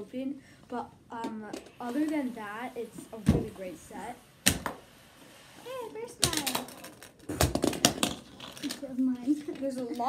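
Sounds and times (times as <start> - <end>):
child's voice or laugh: 8.8 - 10.0.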